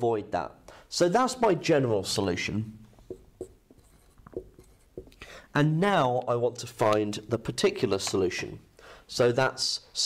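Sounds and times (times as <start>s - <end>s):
marker writing on whiteboard: 2.9s - 5.2s.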